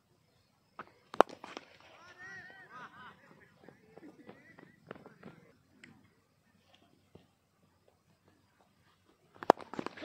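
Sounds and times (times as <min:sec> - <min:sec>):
cricket bat hitting ball: 0:01.1 - 0:01.8
players shouting: 0:01.9 - 0:05.5.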